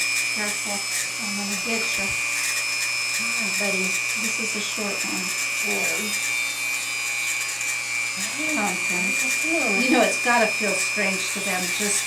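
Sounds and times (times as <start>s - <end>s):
rotary tool grinding with high whine: 0.0s - 12.0s.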